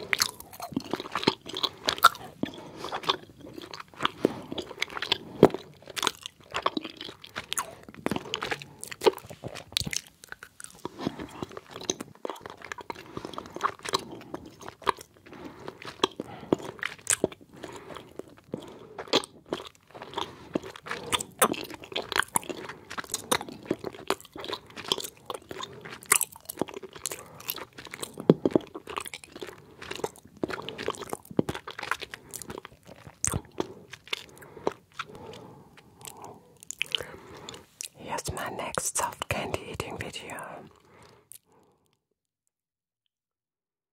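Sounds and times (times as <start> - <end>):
lip and tongue clicks: 0.0 - 41.6
chewing gummy candies: 0.0 - 42.1.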